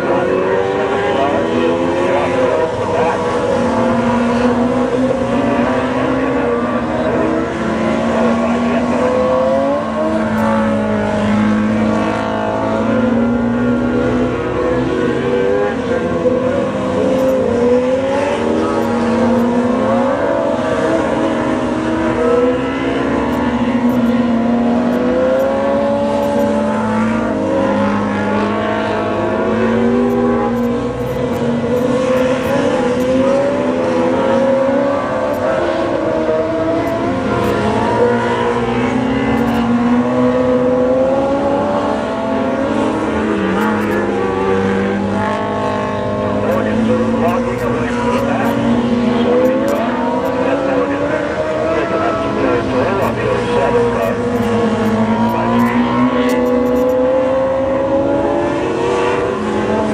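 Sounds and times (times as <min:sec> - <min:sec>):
race car engines revving: 0:00.0 - 0:59.9.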